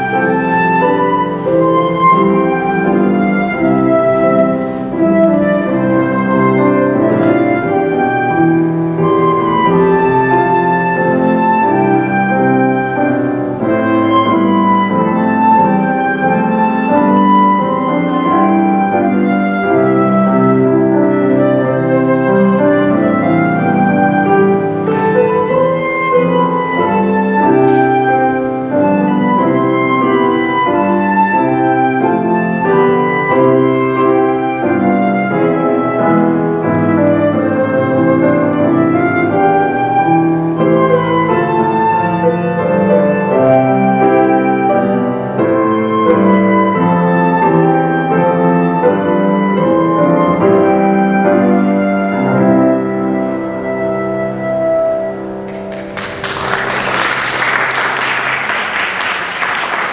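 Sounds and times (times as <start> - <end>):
flute melody: 0.0 - 59.9
piano accompaniment: 0.0 - 59.9.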